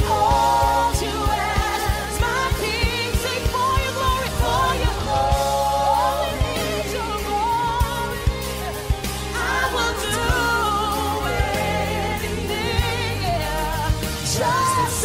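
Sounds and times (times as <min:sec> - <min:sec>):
person singing with vibrato: 0:00.0 - 0:15.0.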